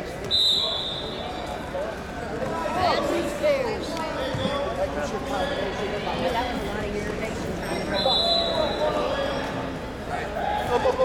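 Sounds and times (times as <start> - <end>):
referee's whistle: 0.2 - 1.4, 8.0 - 8.9.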